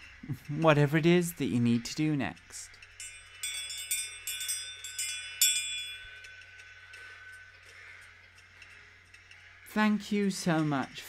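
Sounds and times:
small bell ringing: 2.8 - 7.5.

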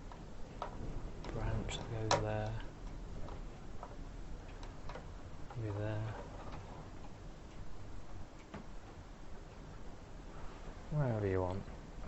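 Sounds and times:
faint light ticks: 0.0 - 9.8
low room hum: 0.0 - 12.0.

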